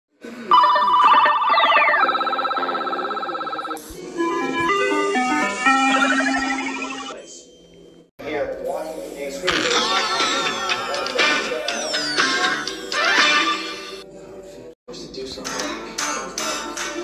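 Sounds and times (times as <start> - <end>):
electronic jingle: 0.5 - 3.8, 4.7 - 7.2.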